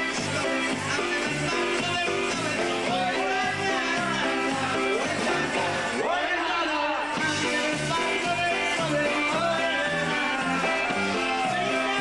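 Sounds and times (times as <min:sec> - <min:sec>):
oom-pah bass beat: 0:00.0 - 0:05.9, 0:07.2 - 0:12.0
polka band playing: 0:00.0 - 0:06.2, 0:07.1 - 0:12.0
trumpet melody: 0:00.0 - 0:12.0.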